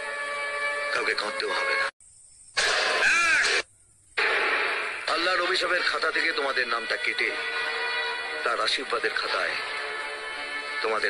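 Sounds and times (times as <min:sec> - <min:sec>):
background music: 0:00.0 - 0:01.9, 0:04.2 - 0:11.0.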